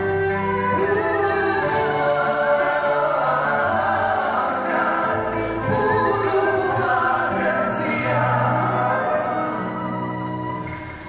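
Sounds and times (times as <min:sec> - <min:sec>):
violin: 0:00.0 - 0:11.0
woman singing with vibrato: 0:00.7 - 0:09.7.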